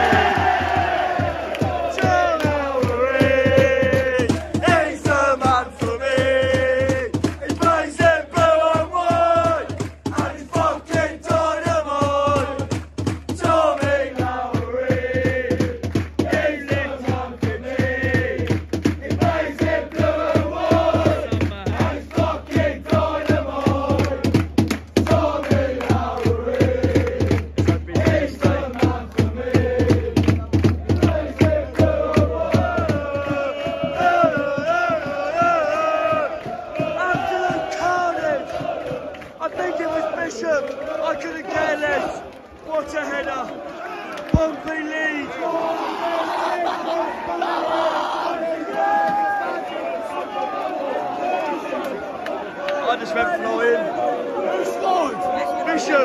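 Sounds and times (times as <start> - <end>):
rhythmic clapping: 0.0 - 44.9
crowd chanting: 0.0 - 56.0.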